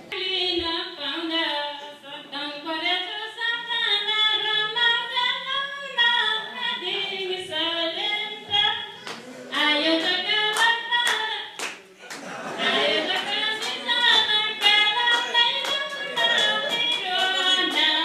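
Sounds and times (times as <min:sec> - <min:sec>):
rhythmic hand claps: 0:09.0 - 0:18.0
woman singing folk song: 0:13.0 - 0:18.0.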